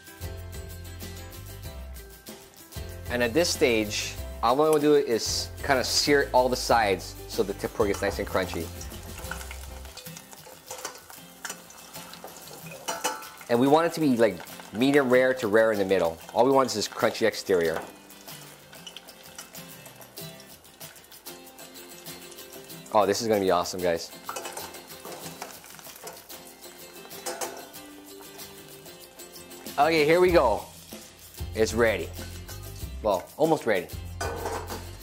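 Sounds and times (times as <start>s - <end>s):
quiet background music: 0.0s - 35.0s
food frying in hot oil: 6.6s - 32.6s
metal tongs clicking on pan: 7.8s - 15.2s, 16.2s - 21.0s, 24.2s - 26.4s, 27.0s - 28.4s.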